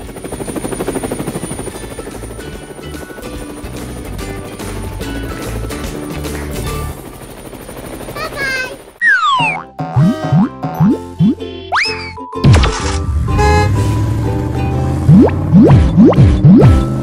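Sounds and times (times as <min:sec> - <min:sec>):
children's background music: 0:09.0 - 0:17.0.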